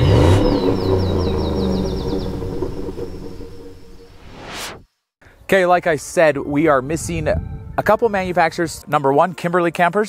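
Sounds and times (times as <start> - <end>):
deep engine-like rev and rumble: 0.0 - 4.5
high chirps: 0.0 - 4.7.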